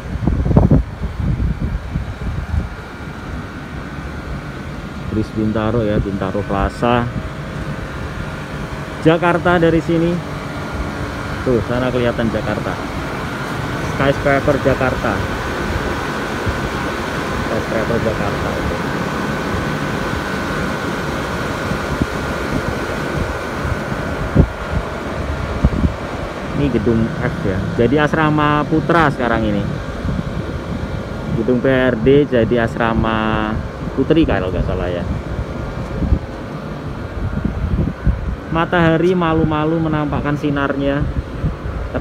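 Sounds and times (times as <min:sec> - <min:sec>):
air-conditioner fans rushing: 0:00.0 - 0:42.0
thin high hum: 0:00.0 - 0:42.0
wind buffeting microphone: 0:00.0 - 0:42.0.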